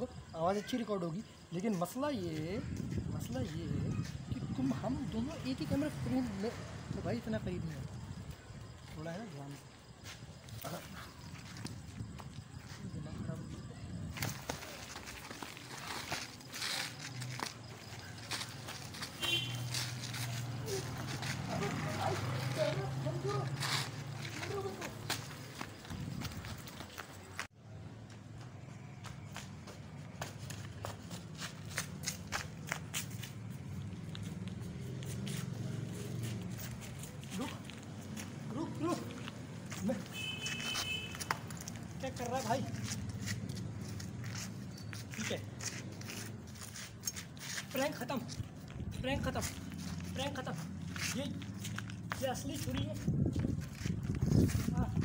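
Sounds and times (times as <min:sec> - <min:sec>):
shuffling: 0:14.1 - 0:27.5, 0:29.3 - 0:55.0
footsteps crunching on rubble: 0:14.1 - 0:55.0.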